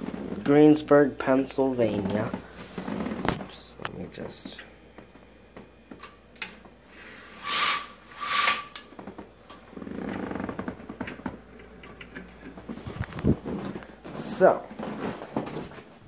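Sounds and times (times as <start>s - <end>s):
blind cord scraping pulls: 7.3s - 8.9s.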